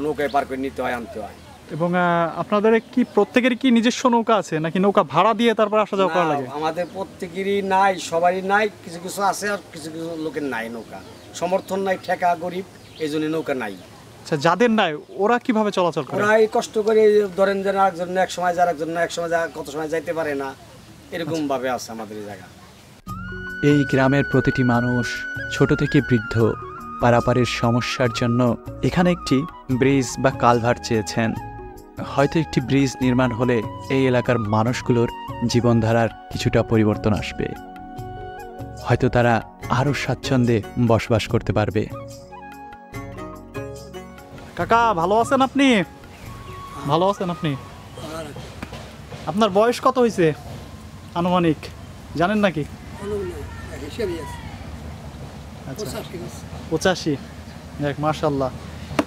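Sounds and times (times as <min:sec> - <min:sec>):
man speaking: 0:00.0 - 0:22.5, 0:23.6 - 0:37.6
men talking: 0:00.0 - 0:22.5, 0:23.5 - 0:37.7, 0:38.6 - 0:42.0, 0:44.5 - 0:54.5, 0:55.6 - 0:58.6.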